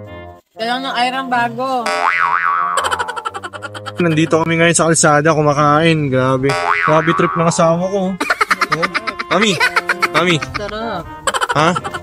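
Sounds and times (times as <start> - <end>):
cartoon boing: 1.9 - 4.2, 6.5 - 7.7.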